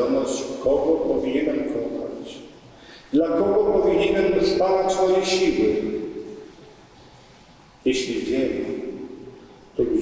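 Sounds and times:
priest speaking over loudspeakers: 0:00.0 - 0:06.5, 0:07.8 - 0:10.0
church echo: 0:00.0 - 0:06.6.

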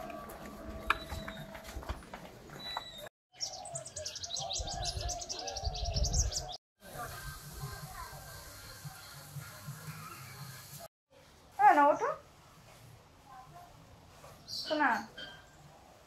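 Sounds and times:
small birds chirping: 0:02.6 - 0:06.6.

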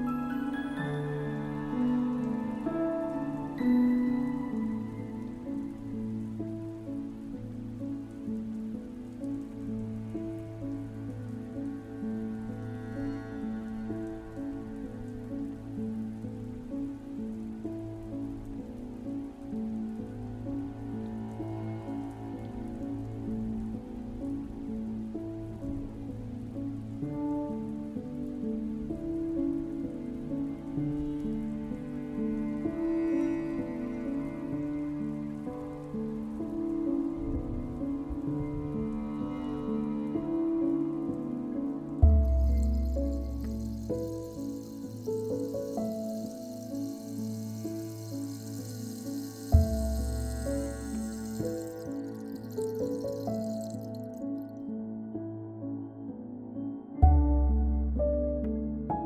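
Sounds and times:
steady rain: 0:00.0 - 0:54.8
piano and harp relaxation music: 0:00.0 - 0:59.0.

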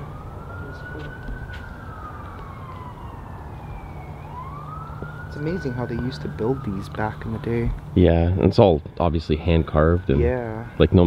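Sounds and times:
emergency siren wailing: 0:00.0 - 0:08.0, 0:09.1 - 0:11.0.

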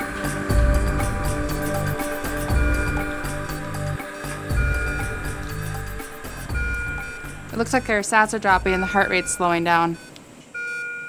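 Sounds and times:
low bass pulse: 0:00.0 - 0:10.1
sustained synthesizer tones: 0:00.0 - 0:10.2.

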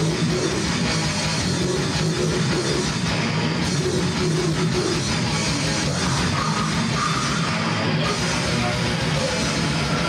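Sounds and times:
drum kit: 0:00.0 - 0:10.0
electric guitar: 0:00.0 - 0:10.0.

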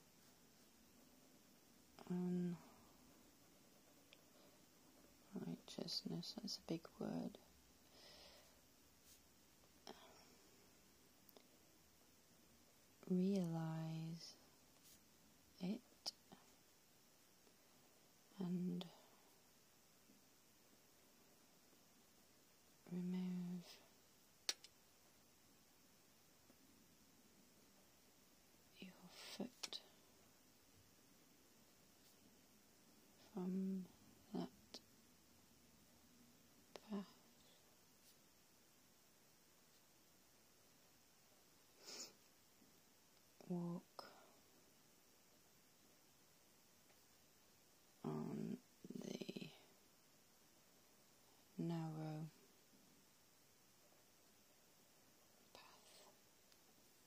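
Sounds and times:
woman whispering: 0:02.0 - 0:02.9, 0:05.2 - 0:07.5, 0:09.8 - 0:10.4, 0:13.0 - 0:14.5, 0:15.5 - 0:16.6, 0:18.3 - 0:19.3, 0:22.8 - 0:23.9, 0:28.7 - 0:30.0, 0:33.2 - 0:34.8, 0:36.7 - 0:37.6, 0:43.4 - 0:44.4, 0:48.0 - 0:49.7, 0:51.5 - 0:52.4, 0:55.4 - 0:56.2.

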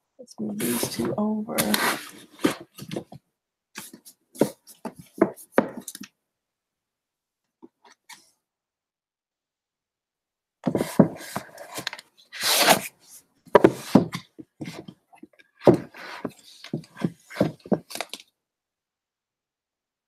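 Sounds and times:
book sliding scrape: 0:01.6 - 0:02.8, 0:10.7 - 0:14.8, 0:15.7 - 0:17.8
books knocking on a shelf: 0:13.5 - 0:14.8, 0:15.6 - 0:16.0.

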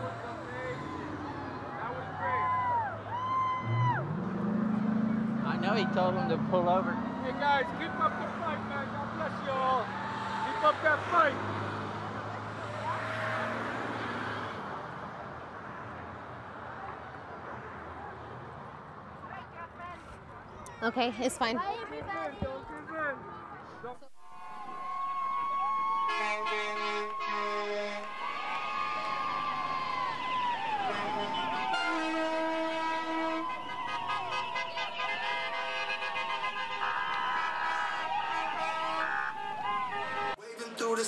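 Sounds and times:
crowd voices: 0:19.9 - 0:41.0
truck engine rumble: 0:23.8 - 0:40.4
vehicle horn chord: 0:26.0 - 0:28.2, 0:30.7 - 0:40.4.

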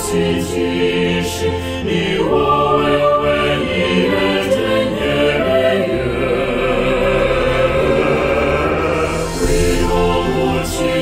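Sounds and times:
voices singing gospel chords: 0:00.0 - 0:11.0.

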